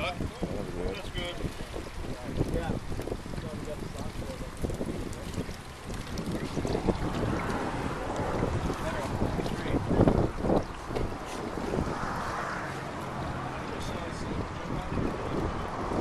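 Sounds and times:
wind rumbling on microphone: 0.0s - 16.0s
water splashing and sloshing: 0.1s - 16.0s.

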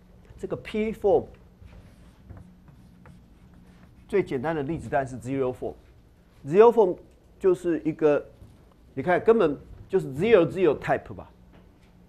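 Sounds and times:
chalk scratching on blackboard: 1.6s - 4.7s.

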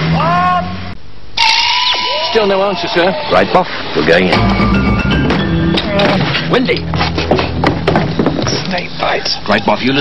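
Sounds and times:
background music with low notes: 4.2s - 7.7s.

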